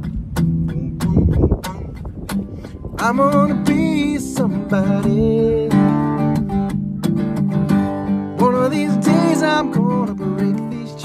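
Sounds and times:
acoustic guitar strummed percussively: 0:00.0 - 0:11.0.

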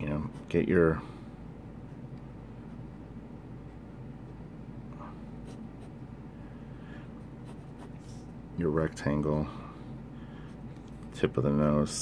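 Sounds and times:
pencil scratching on paper: 0:05.4 - 0:06.0, 0:07.2 - 0:08.3.

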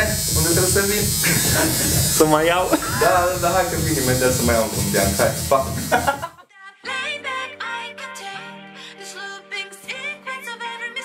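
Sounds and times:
man talking: 0:00.0 - 0:06.2
tattoo machine buzzing: 0:00.0 - 0:06.3
background music with singing: 0:01.1 - 0:11.0.

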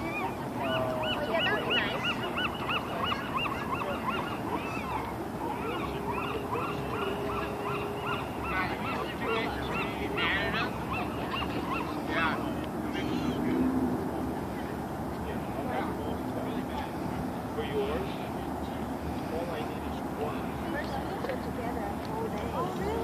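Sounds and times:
flock of birds calling: 0:00.0 - 0:13.6.

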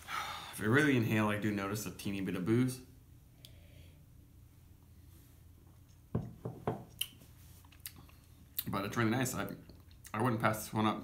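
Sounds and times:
glass knocking on table: 0:06.1 - 0:06.9.

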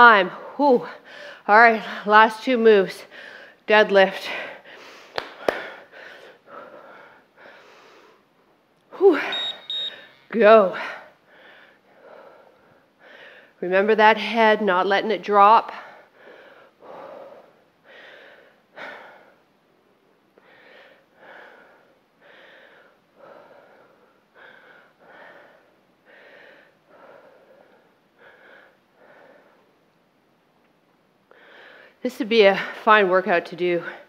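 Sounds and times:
woman breathing hard: 0:00.3 - 0:02.1, 0:03.0 - 0:03.6, 0:04.2 - 0:08.3, 0:09.0 - 0:13.6, 0:15.7 - 0:19.5, 0:20.4 - 0:29.8, 0:31.3 - 0:32.0.

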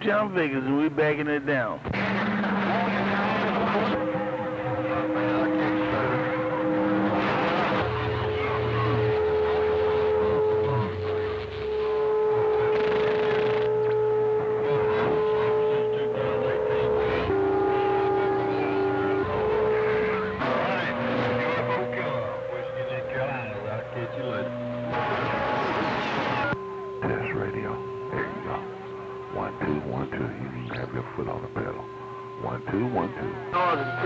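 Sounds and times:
radio whistling tones: 0:02.0 - 0:34.0
garbled radio voices: 0:14.4 - 0:34.0
radio hiss: 0:20.5 - 0:34.0.

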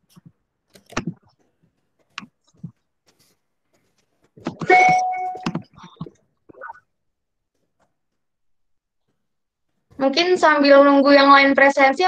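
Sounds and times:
two-tone electronic chime: 0:04.6 - 0:05.6.

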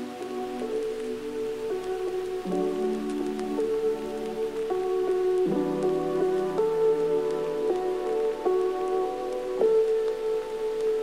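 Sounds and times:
faint light ticks: 0:00.2 - 0:11.0.

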